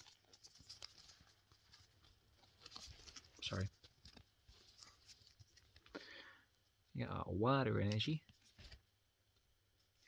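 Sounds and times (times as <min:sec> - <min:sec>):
trading cards ticking and rustling: 0:00.0 - 0:06.1.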